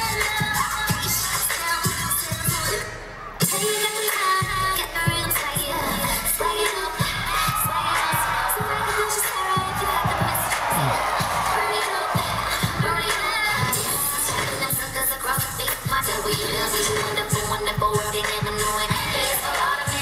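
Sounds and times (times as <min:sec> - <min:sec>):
crowd cheering: 0:00.0 - 0:20.0
hip-hop dance music: 0:00.0 - 0:20.0.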